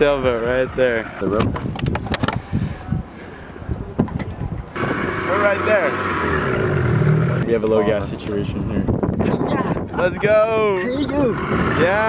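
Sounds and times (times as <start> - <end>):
wind buffeting microphone: 0.0 - 12.0
outboard motor running: 4.7 - 8.6, 10.8 - 12.0.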